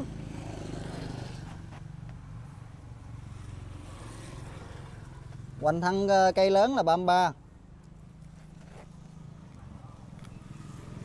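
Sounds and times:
small engine running: 0:00.0 - 0:01.8.

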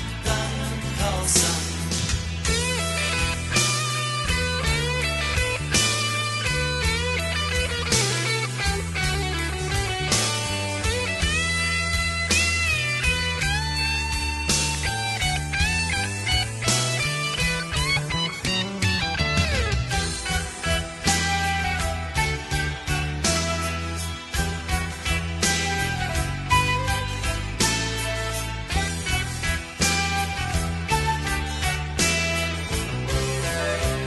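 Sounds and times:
bass and drums: 0:00.0 - 0:34.0
lead electric guitar melody: 0:00.0 - 0:34.0.

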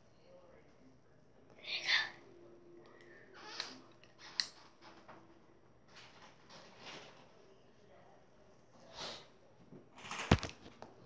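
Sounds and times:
girl whispering: 0:01.6 - 0:02.3.

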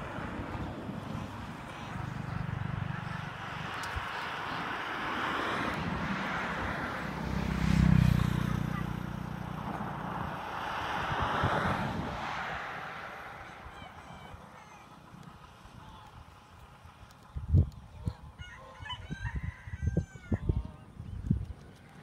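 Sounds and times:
broad rushing noise: 0:00.0 - 0:18.1.

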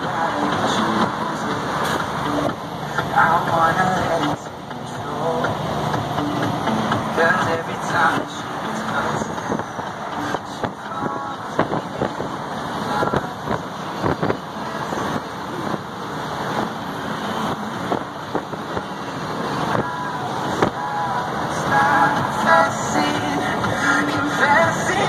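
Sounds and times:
road rumble and hiss: 0:00.0 - 0:25.0.

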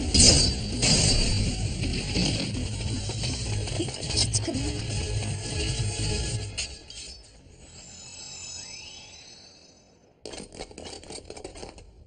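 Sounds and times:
background music: 0:00.0 - 0:07.8
rising chime-like tones: 0:07.0 - 0:10.1
metallic clinking and clattering: 0:10.3 - 0:12.0.

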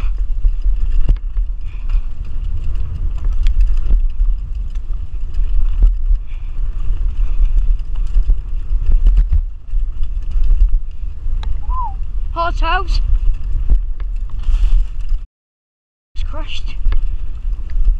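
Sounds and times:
bike knocks and rattles: 0:00.0 - 0:11.6
wind buffeting microphone: 0:00.0 - 0:15.2, 0:16.3 - 0:17.9
bike tyre rumble: 0:00.0 - 0:15.3, 0:16.2 - 0:17.9.

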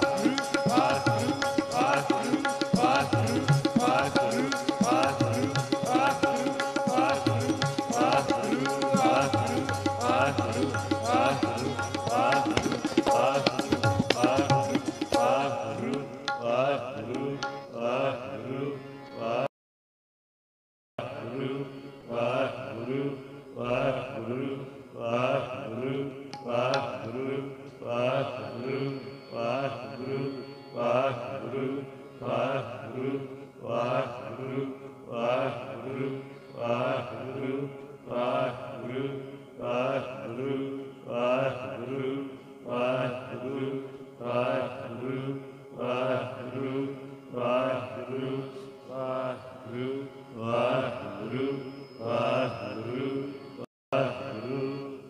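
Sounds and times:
harmonium chords: 0:00.0 - 0:15.6
men singing a hymn: 0:00.0 - 0:19.5, 0:21.0 - 0:55.0.

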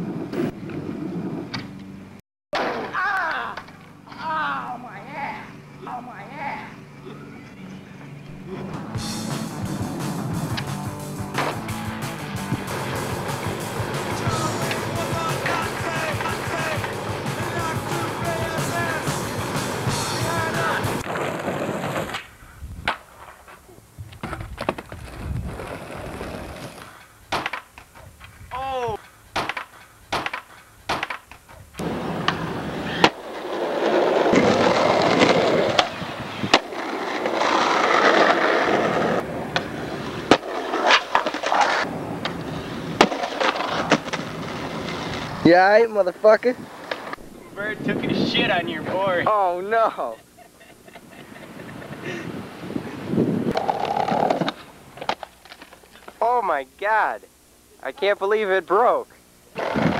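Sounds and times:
skateboard wheels rolling on pavement: 0:00.0 - 0:56.5, 0:57.9 - 0:59.9
music: 0:08.4 - 0:21.0
skateboard clacking on ground: 0:10.5 - 0:22.3, 0:26.7 - 0:28.4, 0:29.0 - 0:45.3, 0:53.5 - 0:56.2.

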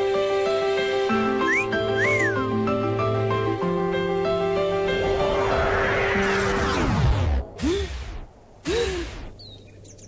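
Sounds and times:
wolf whistle: 0:01.2 - 0:02.4.

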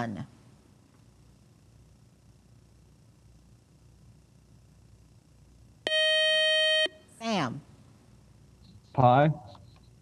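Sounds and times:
quiz show buzz-in tone: 0:05.8 - 0:07.6.

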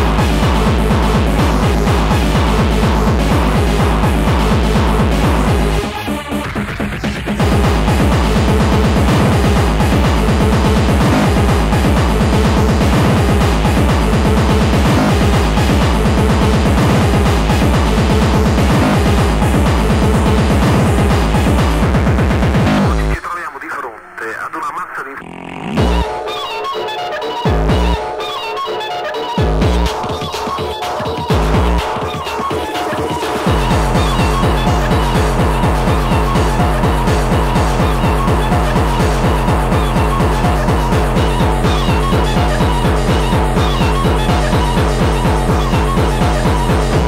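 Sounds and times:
fast pounding kick drum: 0:00.0 - 0:23.2, 0:29.4 - 0:47.0
sampled spoken voice: 0:22.8 - 0:25.6.

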